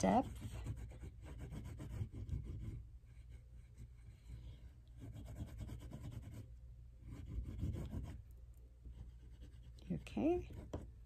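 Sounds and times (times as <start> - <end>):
oil pastel scratching paper: 0.0 - 8.2, 8.9 - 10.9.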